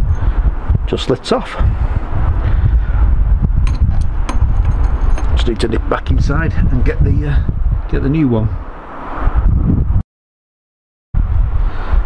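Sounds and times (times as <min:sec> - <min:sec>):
wind on microphone: 0:00.0 - 0:10.0, 0:11.2 - 0:12.0.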